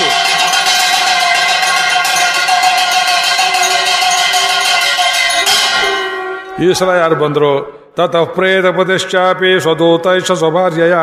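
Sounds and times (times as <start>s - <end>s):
hand bell ringing rapidly: 0.0s - 6.6s.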